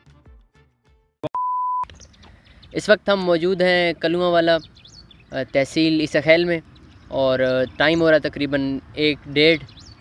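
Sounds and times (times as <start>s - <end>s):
background music with beat: 0.0s - 1.1s
high-pitched electronic beep: 1.3s - 1.9s.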